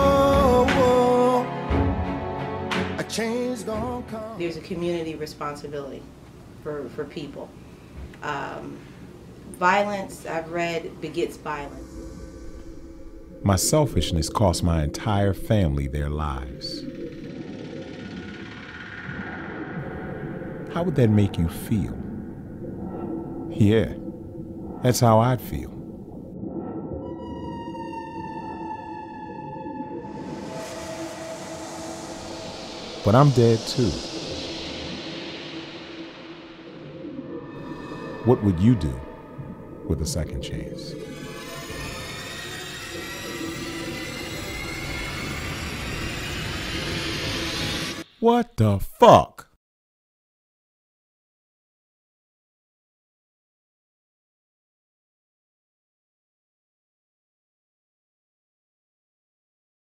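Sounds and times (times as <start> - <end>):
ominous drone: 11.0 - 48.1.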